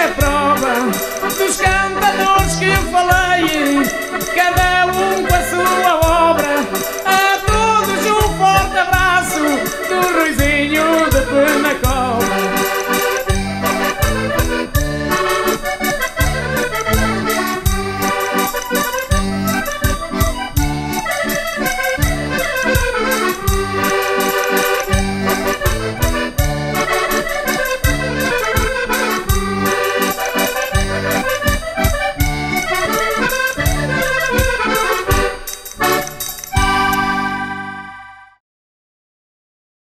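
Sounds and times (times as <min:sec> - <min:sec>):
button accordion playing: 0:00.0 - 0:38.4
steady bass beat: 0:00.1 - 0:24.2, 0:24.8 - 0:37.3.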